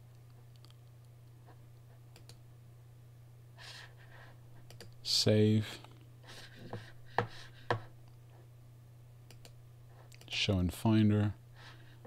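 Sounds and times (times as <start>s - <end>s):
faint low hum: 0.0s - 12.0s
computer mouse clicks: 2.1s - 2.4s, 4.6s - 5.0s, 9.3s - 10.3s.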